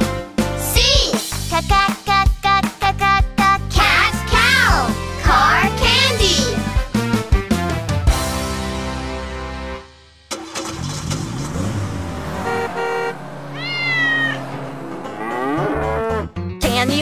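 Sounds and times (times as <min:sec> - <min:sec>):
children's music: 0:00.0 - 0:09.8, 0:15.0 - 0:17.0
car driving past: 0:10.5 - 0:16.4
car horn honk: 0:12.1 - 0:16.1
cat meowing: 0:13.5 - 0:14.4.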